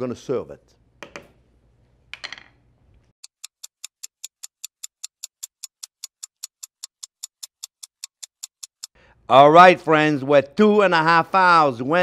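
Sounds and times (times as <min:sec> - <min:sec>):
clock ticking fast: 0:03.2 - 0:09.0.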